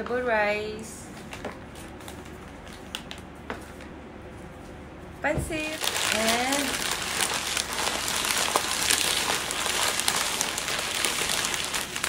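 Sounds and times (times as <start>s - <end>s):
paper bag crinkling: 5.6s - 12.0s.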